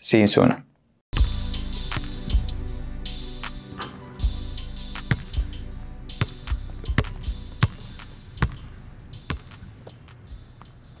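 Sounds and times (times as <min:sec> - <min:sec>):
outro music: 0:01.2 - 0:10.6
basketball bouncing: 0:05.0 - 0:05.4, 0:06.2 - 0:10.0.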